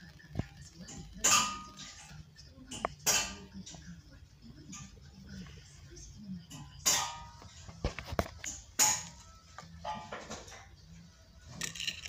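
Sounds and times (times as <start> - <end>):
metal car parts clanking: 6.5 - 10.8.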